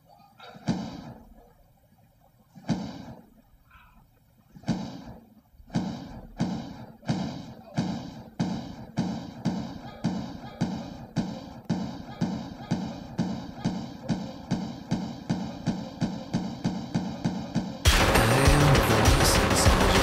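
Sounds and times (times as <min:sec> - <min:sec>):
intro music with heavy thuds: 0:05.8 - 0:20.0.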